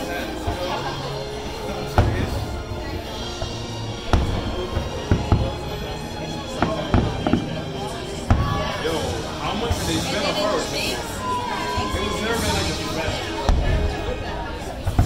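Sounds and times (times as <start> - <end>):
crowd chatter: 0.0 - 15.0
fireworks booming: 1.8 - 10.7, 11.3 - 15.0.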